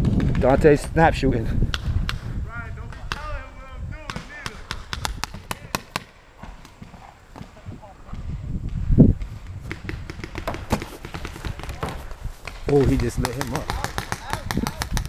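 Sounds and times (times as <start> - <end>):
paintball markers firing: 4.1 - 7.7, 8.6 - 15.0.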